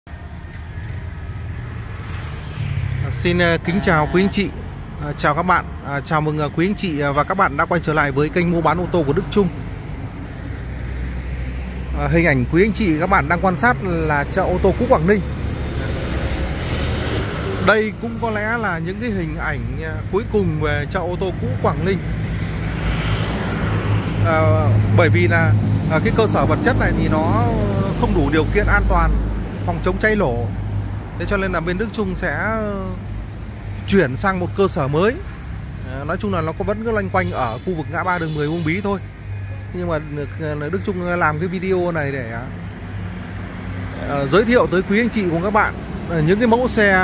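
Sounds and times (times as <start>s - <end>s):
low rumble of road traffic: 0.1s - 47.0s
vehicle passing: 0.1s - 47.0s.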